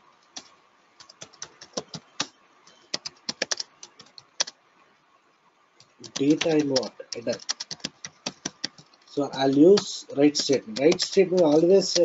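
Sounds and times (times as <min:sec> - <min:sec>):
computer keyboard typing: 0:00.2 - 0:04.6, 0:05.8 - 0:12.0.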